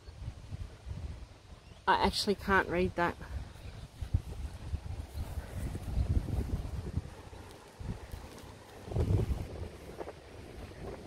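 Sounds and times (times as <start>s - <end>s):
wind buffeting microphone: 0.0s - 1.7s, 2.3s - 11.0s.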